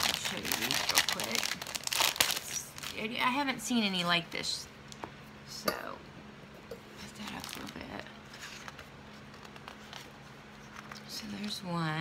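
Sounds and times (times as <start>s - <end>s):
cardstock paper rustling: 7.3s - 11.6s.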